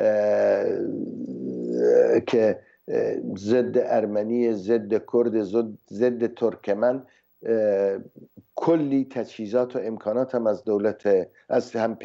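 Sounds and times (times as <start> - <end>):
man's drawn-out hesitation sound: 0.0 - 12.0.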